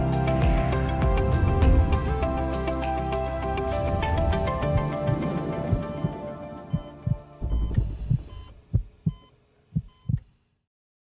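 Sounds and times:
music bed: 0.0 - 10.2
low thumps: 0.5 - 2.5, 3.6 - 9.2.

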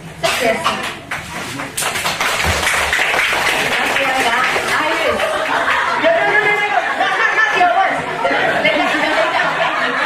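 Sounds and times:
audience clapping: 0.8 - 6.0.

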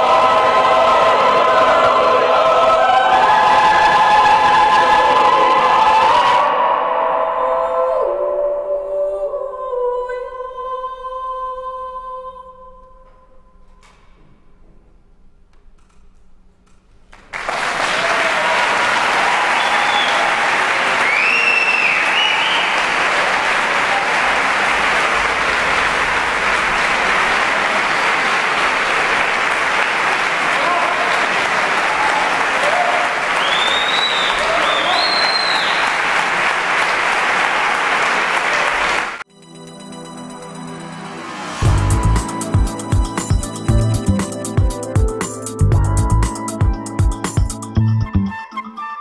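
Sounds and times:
audience applause: 17.1 - 39.2
high cheering calls: 17.4 - 39.2.

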